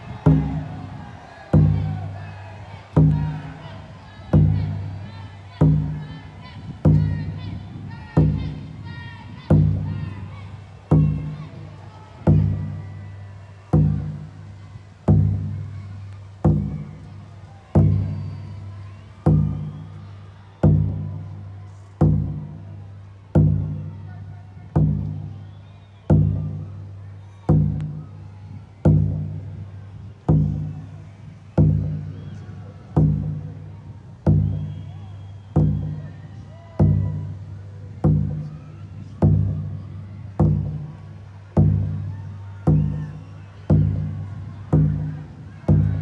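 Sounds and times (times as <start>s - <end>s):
slow deep drumbeat: 0.0s - 25.4s, 26.0s - 46.0s.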